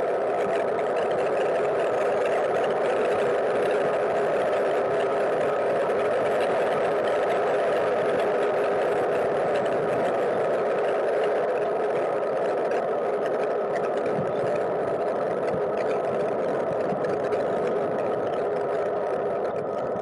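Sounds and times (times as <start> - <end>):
bike road and wind hum: 0.0 - 20.0.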